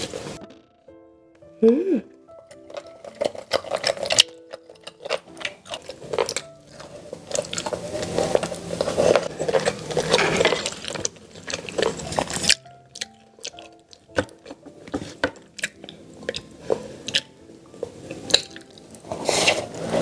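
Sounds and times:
quiet background music: 0:00.0 - 0:20.0
person chewing wetly: 0:02.2 - 0:19.6.

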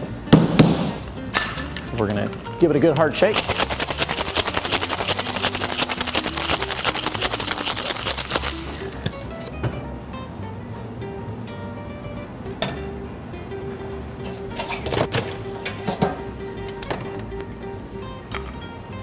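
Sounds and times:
background music: 0:00.0 - 0:19.0
ice rattling in cocktail shaker: 0:03.3 - 0:09.0.

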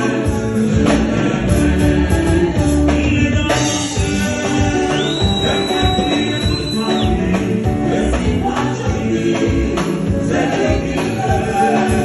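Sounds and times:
band with electric guitar: 0:00.0 - 0:12.0
gospel voices singing: 0:00.0 - 0:12.0.

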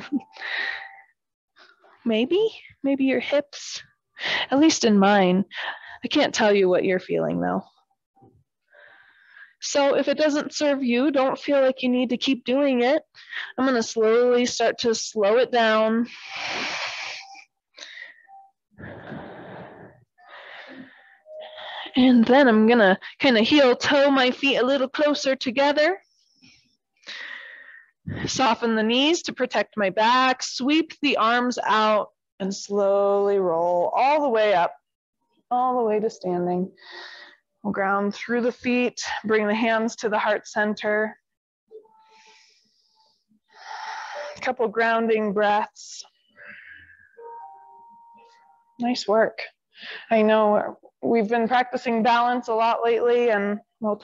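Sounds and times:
person breathing in and out: 0:16.1 - 0:21.9, 0:42.1 - 0:44.4.

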